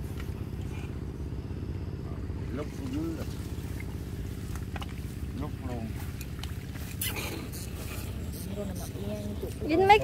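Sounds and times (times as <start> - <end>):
small engine droning: 0.0 - 10.0.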